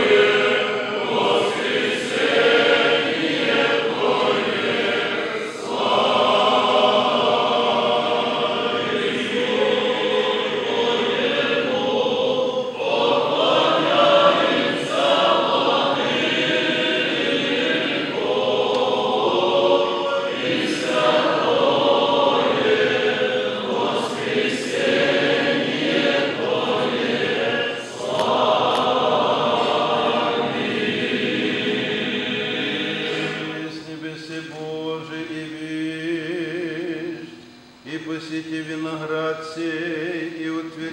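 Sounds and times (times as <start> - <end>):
choir chanting unaccompanied: 0.0 - 37.3, 37.9 - 40.9.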